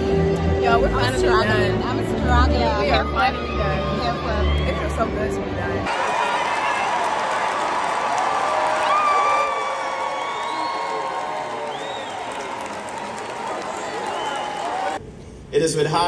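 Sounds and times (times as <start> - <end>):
crowd applauding and cheering: 3.0 - 15.0
shouts and whoops: 3.2 - 5.0, 5.9 - 15.0.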